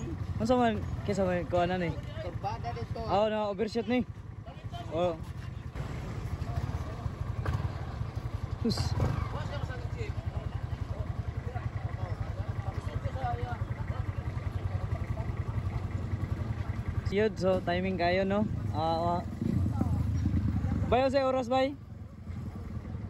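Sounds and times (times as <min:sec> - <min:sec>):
vehicle engine idling: 0:00.0 - 0:23.0.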